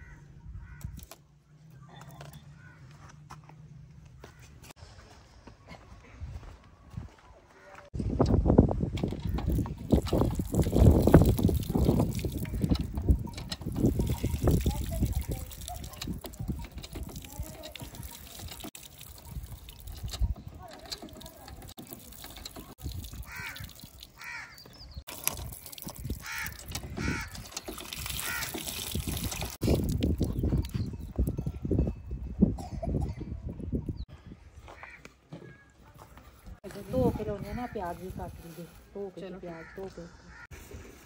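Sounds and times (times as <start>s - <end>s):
footsteps on sandy ground: 2.6s - 9.7s, 34.1s - 39.8s
water pouring from hand pump: 8.9s - 31.3s
water splashing on ground: 9.3s - 30.7s.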